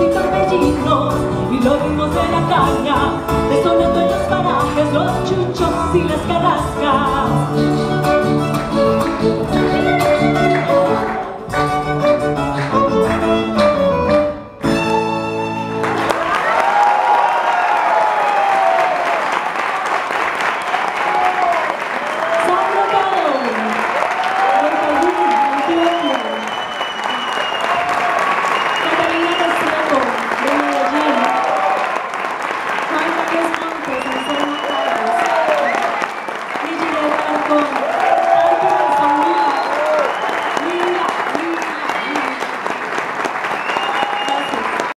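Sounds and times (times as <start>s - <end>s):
audience applauding: 8.5s - 13.8s, 14.8s - 45.0s.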